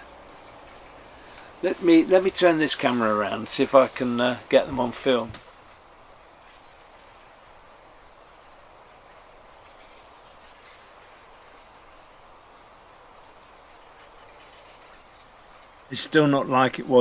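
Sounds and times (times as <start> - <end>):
countryside ambience: 0.0 - 17.0
distant bird calls: 0.0 - 17.0.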